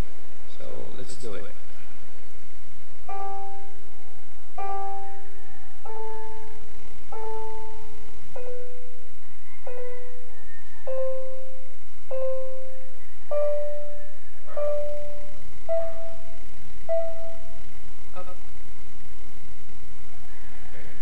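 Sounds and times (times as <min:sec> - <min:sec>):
keyboard notes played slowly: 0:02.8 - 0:19.1.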